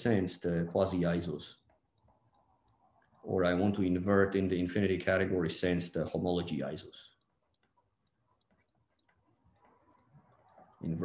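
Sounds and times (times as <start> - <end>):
stylus tapping on tablet: 7.4 - 10.8.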